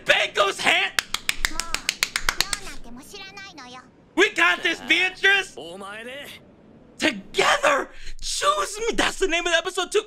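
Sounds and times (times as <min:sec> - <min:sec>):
rapid hand clapping: 0:01.0 - 0:02.8.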